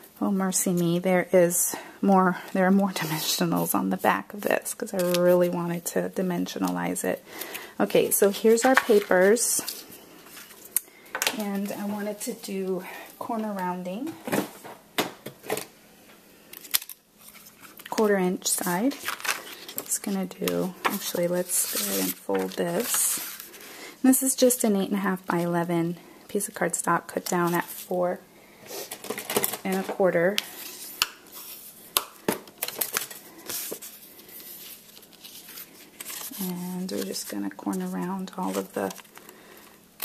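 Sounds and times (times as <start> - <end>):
paper sliding and rustling: 32.8 - 37.4.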